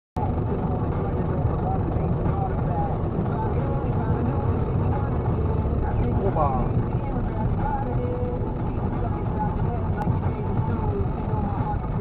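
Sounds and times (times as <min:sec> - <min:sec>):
car road and engine noise: 0:00.2 - 0:12.0.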